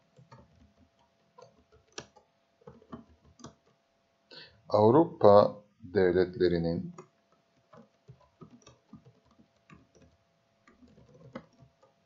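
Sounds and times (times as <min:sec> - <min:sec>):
keyboard typing: 0:00.0 - 0:03.8, 0:06.9 - 0:12.0.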